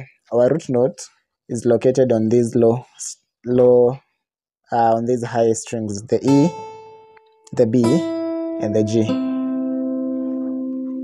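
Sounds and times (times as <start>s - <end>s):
acoustic guitar strings ringing: 6.2s - 11.0s.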